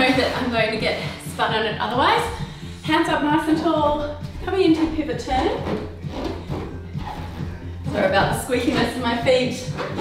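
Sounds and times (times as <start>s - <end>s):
background music: 0.0s - 10.0s
bare feet squeaking on wood: 4.0s - 10.0s.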